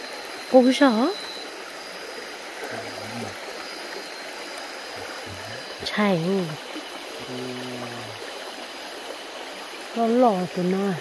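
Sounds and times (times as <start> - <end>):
stream running over rocks: 0.0 - 11.0.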